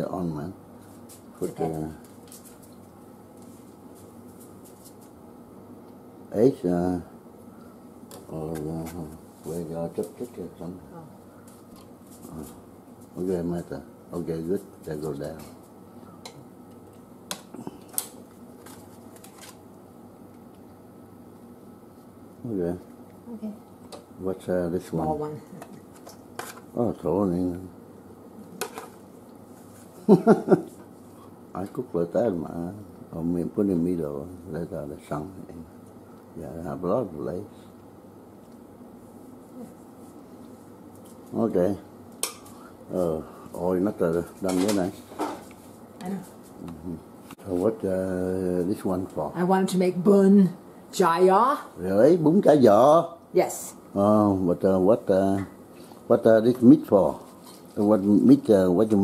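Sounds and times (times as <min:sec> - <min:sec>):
faint background noise: 0:00.0 - 0:59.0.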